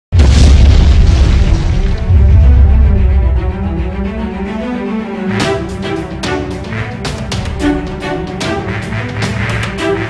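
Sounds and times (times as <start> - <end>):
explosion boom and rumble: 0.1 - 3.8
music: 0.2 - 10.0.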